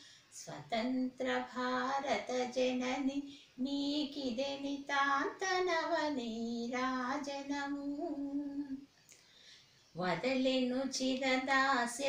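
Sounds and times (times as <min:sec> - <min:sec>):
woman singing unaccompanied: 0:00.3 - 0:08.9, 0:09.9 - 0:12.0.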